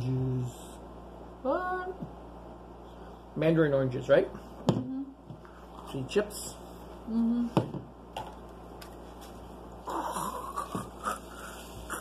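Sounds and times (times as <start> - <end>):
man making whiny vocal noises: 9.8 - 12.0.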